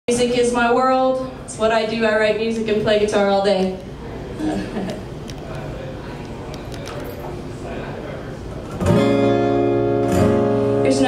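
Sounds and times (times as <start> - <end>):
acoustic guitar chord strummed: 8.7 - 11.0.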